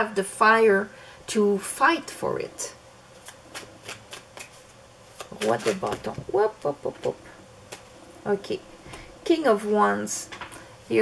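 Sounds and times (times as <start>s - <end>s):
cards being shuffled: 3.2s - 6.4s, 7.0s - 7.9s.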